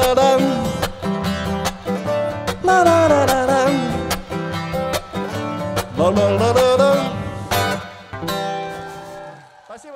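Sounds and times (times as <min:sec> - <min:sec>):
person singing: 0:00.0 - 0:01.0, 0:02.5 - 0:04.4
acoustic guitar strumming: 0:00.0 - 0:09.4.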